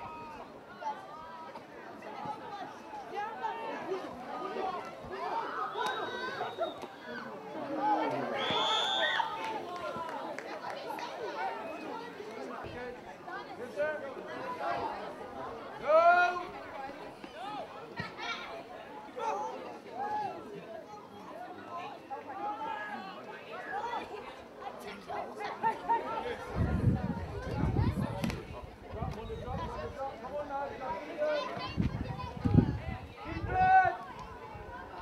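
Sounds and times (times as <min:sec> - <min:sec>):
crowd voices chattering: 0:00.0 - 0:35.0.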